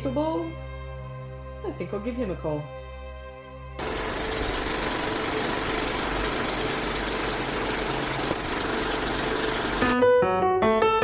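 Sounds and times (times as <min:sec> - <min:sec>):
film projector rattling whir: 0:03.8 - 0:10.0.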